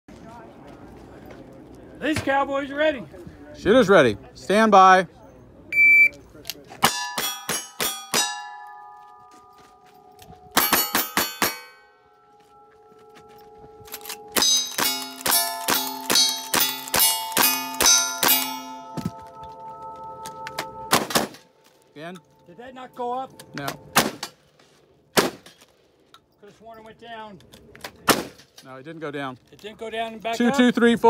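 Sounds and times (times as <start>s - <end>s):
shot timer beep: 5.7s - 6.2s
steel targets clanging: 6.8s - 9.1s, 10.5s - 12.1s, 13.9s - 19.4s
gunshots: 20.9s - 21.4s, 23.9s - 24.3s, 25.2s - 25.6s, 28.1s - 28.5s.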